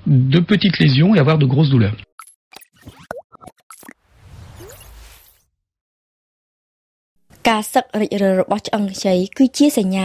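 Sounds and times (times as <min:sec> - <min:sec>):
pops and short blips: 0:02.2 - 0:05.0.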